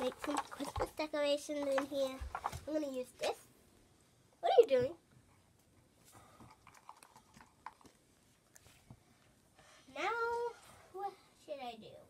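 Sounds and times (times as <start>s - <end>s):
paint pots and brushes clicking: 0.0s - 3.4s, 5.6s - 8.6s.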